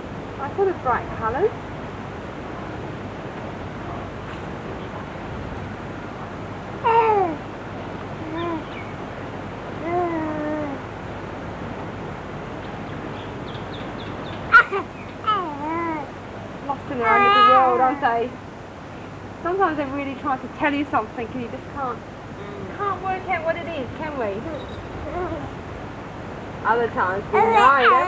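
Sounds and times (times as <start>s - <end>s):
steady background hiss: 0.0s - 28.0s
baby cooing and babbling: 6.8s - 7.4s, 8.2s - 8.7s, 9.8s - 10.8s, 14.5s - 16.1s, 17.0s - 18.0s, 25.0s - 25.6s, 27.3s - 28.0s.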